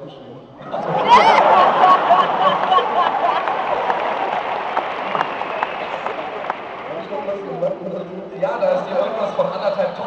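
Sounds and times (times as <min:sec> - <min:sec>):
audience applauding: 0:00.9 - 0:07.7.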